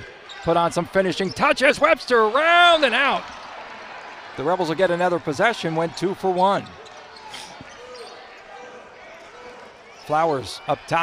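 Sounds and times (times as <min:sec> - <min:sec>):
crowd murmur: 0:03.2 - 0:10.4.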